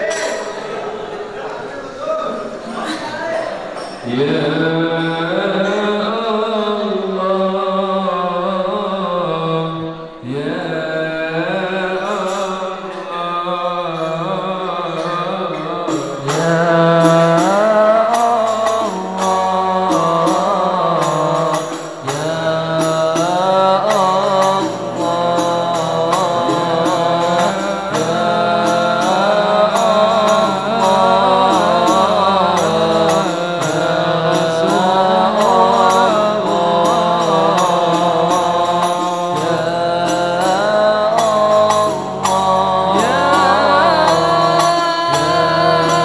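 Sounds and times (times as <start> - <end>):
men chanting ornamented melody: 2.2 - 46.0.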